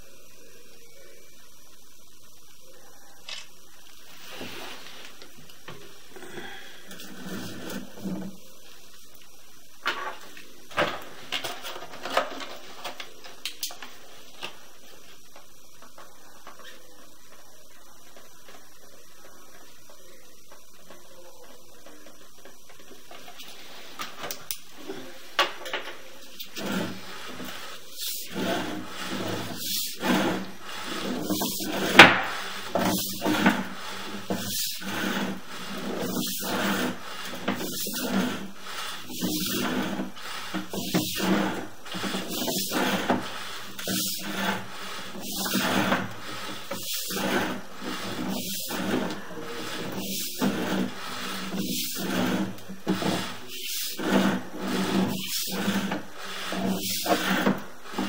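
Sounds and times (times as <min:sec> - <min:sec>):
cable rubbing and rasping: 0:06.8 - 0:25.3, 0:26.0 - 0:58.0.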